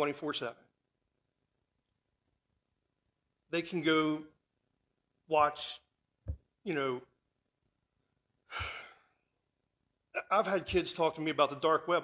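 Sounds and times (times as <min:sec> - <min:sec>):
man sighing: 0:08.5 - 0:09.1.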